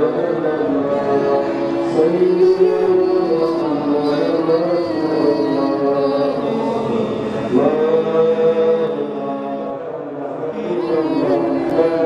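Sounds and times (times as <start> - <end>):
person chanting long notes: 0.0 - 12.0.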